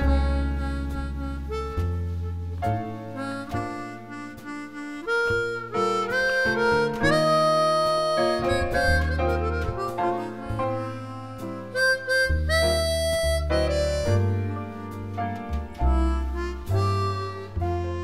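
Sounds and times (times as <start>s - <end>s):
harmonica melody: 0.0s - 18.0s
jazz trio with deep bass: 0.0s - 18.0s.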